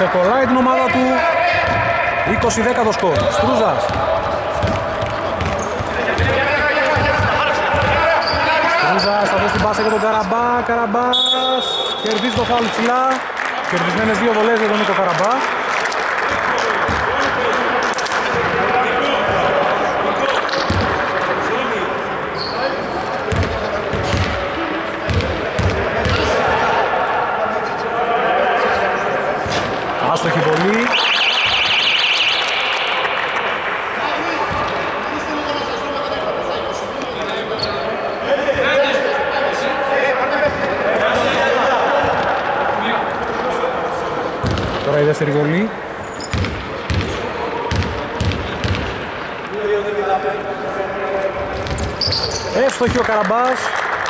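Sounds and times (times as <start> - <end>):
overlapping voices echoing: 0.0 - 54.0
basketball bouncing on hardwood: 1.6 - 2.5, 3.2 - 8.0, 46.3 - 48.9
shrill signal: 30.9 - 34.1.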